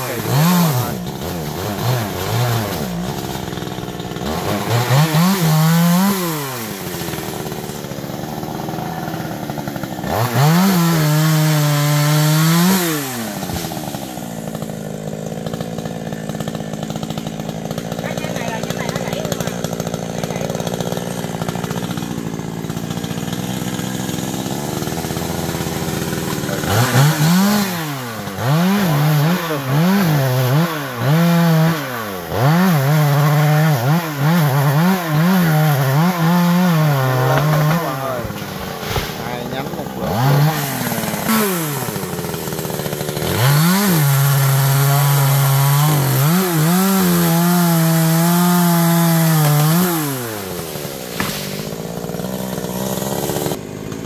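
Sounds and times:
chainsaw engine revving and idling: 0.0 - 54.0.

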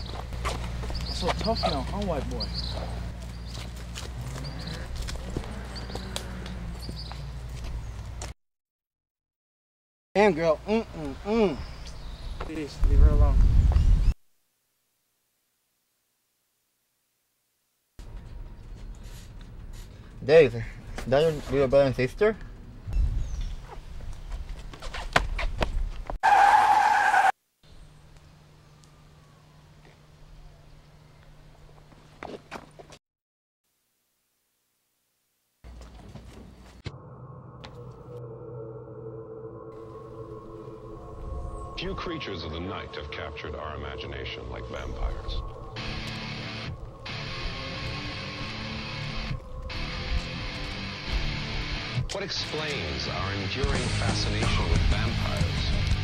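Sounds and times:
tire screech: 26.2 - 27.4
steady low hum: 36.6 - 56.0
person speaking: 41.8 - 45.6.

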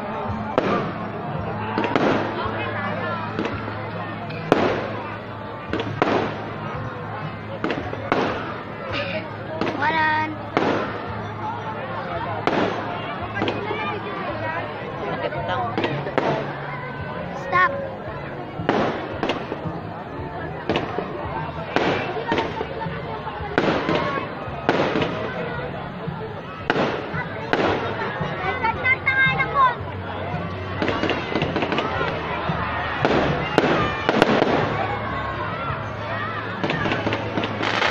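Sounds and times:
people's voices: 0.0 - 37.9
fireworks bangs: 0.4 - 2.6, 3.3 - 3.8, 4.4 - 6.8, 7.6 - 8.7, 9.6 - 11.2, 12.4 - 13.7, 15.8 - 16.6, 18.6 - 19.8, 20.6 - 21.0, 21.6 - 22.8, 23.5 - 25.5, 26.6 - 28.0, 30.8 - 32.2, 33.0 - 35.2, 36.6 - 37.9.

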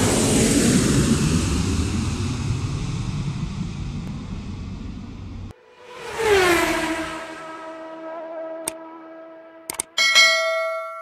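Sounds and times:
notification bell chime: 10.0 - 11.0.

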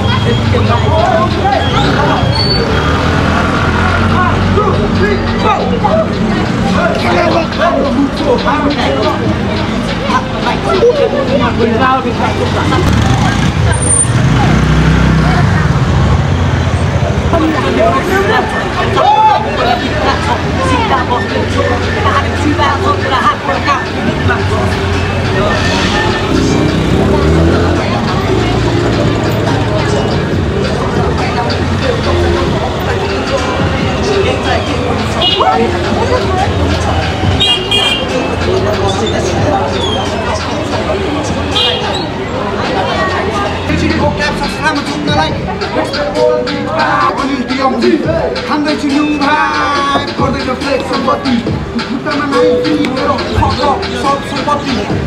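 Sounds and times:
street traffic: 0.0 - 55.0
young men talking and calling out: 0.0 - 55.0
man rapping: 4.1 - 12.9, 17.3 - 25.5, 37.9 - 41.6, 42.6 - 55.0
high-pitched tone: 52.2 - 53.9.

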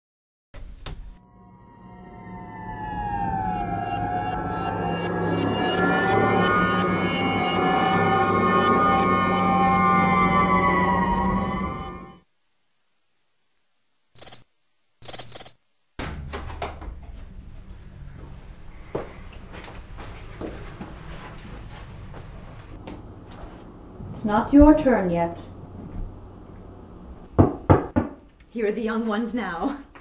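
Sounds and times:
short high chirps: 14.2 - 14.4, 15.0 - 15.6
knocks on a door: 27.4 - 28.2.

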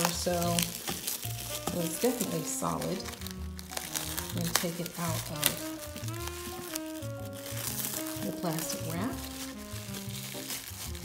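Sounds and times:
background music: 0.0 - 11.0
plastic cling wrap crinkling: 0.0 - 11.0.

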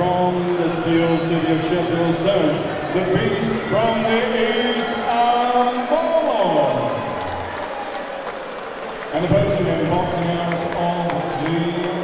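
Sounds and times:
announcer calling over loudspeaker: 0.0 - 7.2
crowd clapping: 3.2 - 12.0.

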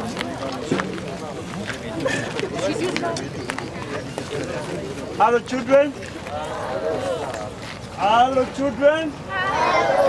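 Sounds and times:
quieter voices of group: 0.0 - 10.0.

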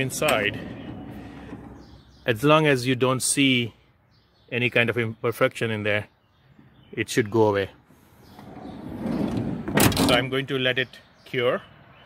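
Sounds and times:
sliding door rolling on track: 0.1 - 2.0, 8.4 - 10.2
door shutting with thud: 9.0 - 10.3.

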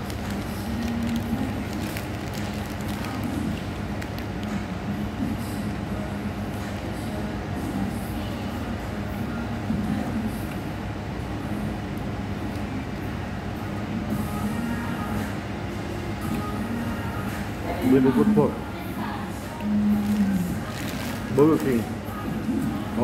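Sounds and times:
low mechanical hum: 0.0 - 23.0.

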